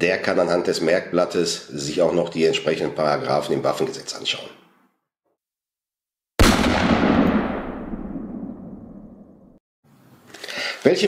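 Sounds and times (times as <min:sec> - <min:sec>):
loud bang transition effect: 0:06.4 - 0:09.3.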